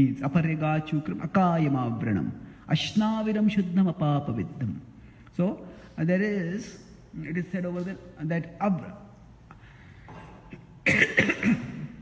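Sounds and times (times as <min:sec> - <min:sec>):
man coughing: 0:10.4 - 0:12.0.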